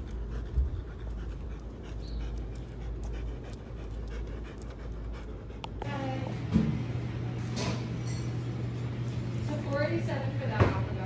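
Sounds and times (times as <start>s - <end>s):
dog panting: 0.0s - 6.4s.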